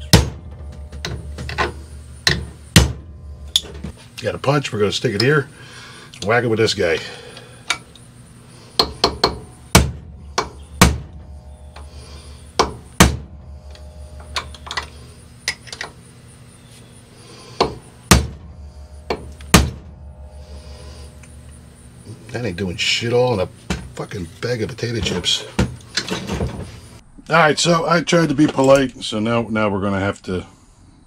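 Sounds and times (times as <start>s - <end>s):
hammer striking steel punch: 0.0s - 3.9s, 8.8s - 14.9s, 17.6s - 21.4s.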